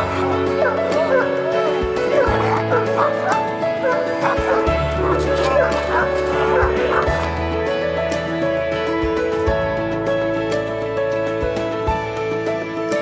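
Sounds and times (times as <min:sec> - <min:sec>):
dog barking: 0:00.0 - 0:07.3
background music: 0:00.0 - 0:13.0.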